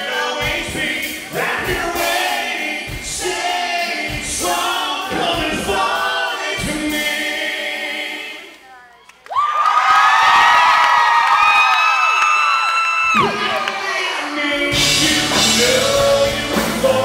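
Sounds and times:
live country band with singing: 0.0 - 8.5, 13.0 - 17.0
crowd screaming and cheering: 9.2 - 15.3.

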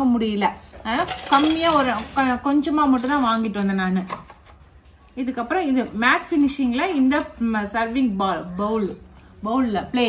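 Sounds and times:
woman speaking: 0.0 - 4.2, 5.1 - 10.0
dishes and utensils clinking: 0.8 - 4.2.

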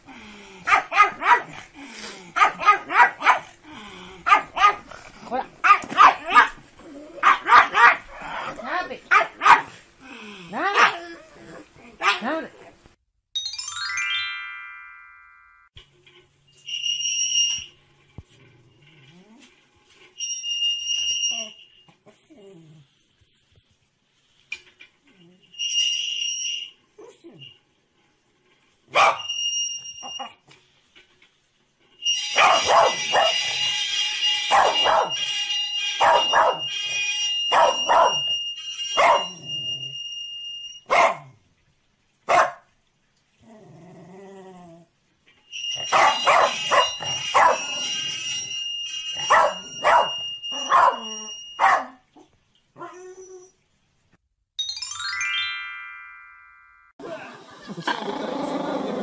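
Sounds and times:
dog barking: 0.7 - 1.6, 2.4 - 3.5, 4.2 - 4.9, 5.6 - 6.6, 7.2 - 8.2, 9.1 - 9.8, 10.6 - 11.0, 12.0 - 12.3, 28.9 - 29.3, 32.4 - 33.4, 34.5 - 35.2, 36.0 - 36.6, 37.5 - 38.2, 39.0 - 39.3, 40.9 - 41.4, 42.3 - 42.7, 45.9 - 47.6, 49.3 - 52.0
high-pitched tone: 13.4 - 15.7, 54.6 - 56.9.

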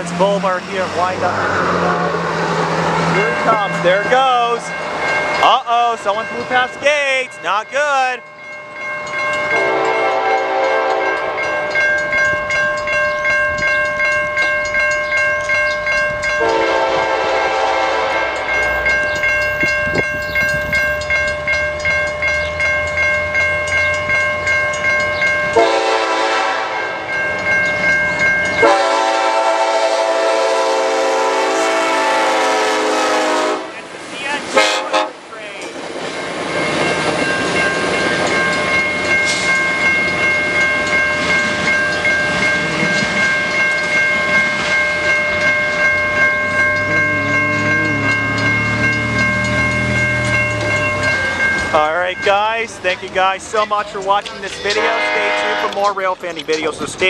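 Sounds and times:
crossing bell ringing: 0.0 - 57.0
train rumbling and rattling: 0.0 - 57.0
locomotive horn blasts: 9.5 - 11.5, 16.4 - 18.8, 25.6 - 27.0, 28.6 - 33.9, 34.5 - 35.3, 46.8 - 50.5, 54.7 - 55.9.

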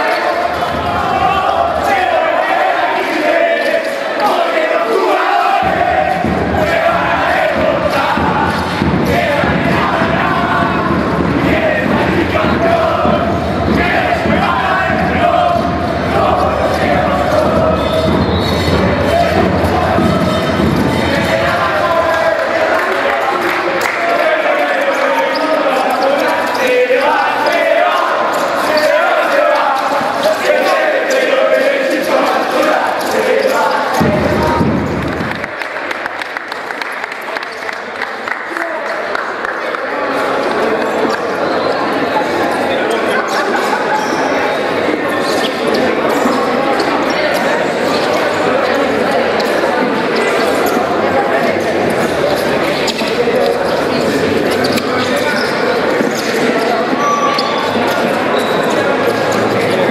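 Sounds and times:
group shouting and chanting: 0.0 - 35.5.

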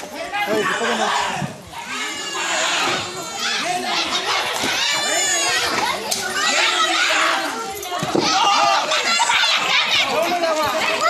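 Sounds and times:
crowd shouting and screaming: 0.0 - 11.0.

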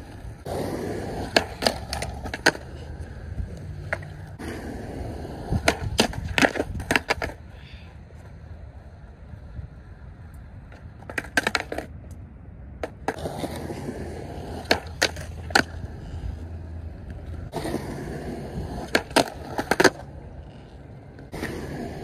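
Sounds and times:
skateboard clacks: 0.0 - 7.4, 10.6 - 12.2, 12.8 - 22.0
skateboard wheels rolling on concrete: 0.0 - 22.0.

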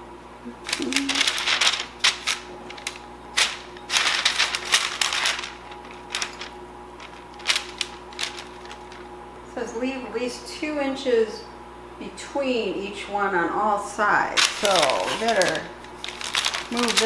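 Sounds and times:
crinkling paper: 0.6 - 9.1, 14.4 - 17.0.

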